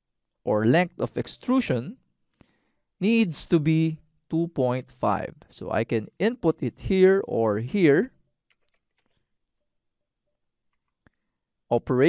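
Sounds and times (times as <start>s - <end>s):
person speaking: 0.4s - 2.1s, 3.0s - 9.1s
keyboard keystrokes: 8.5s - 9.1s.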